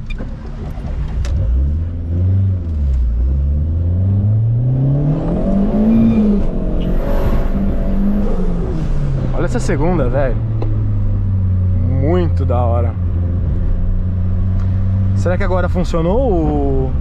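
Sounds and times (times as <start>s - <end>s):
turbocharged engine accelerating: 0.2s - 17.0s.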